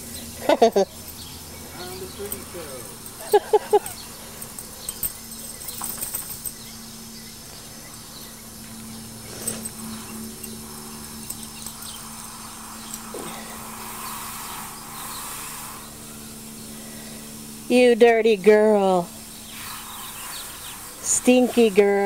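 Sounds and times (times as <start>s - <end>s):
steady low hum: 0.0s - 22.0s
garden hose spraying water: 8.0s - 22.0s.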